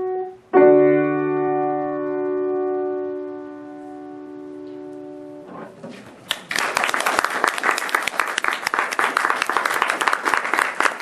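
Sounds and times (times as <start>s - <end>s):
grand piano chords: 0.0s - 6.3s.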